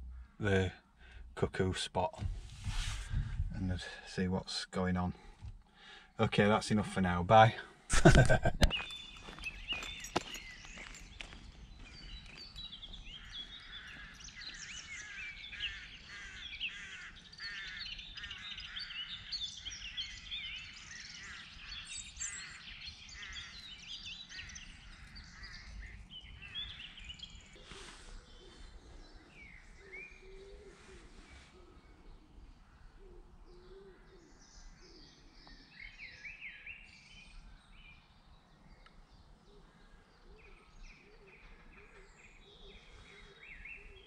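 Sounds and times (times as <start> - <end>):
songbirds chirping: 0.0 - 44.0
lower bird call: 8.6 - 38.0, 39.5 - 44.0.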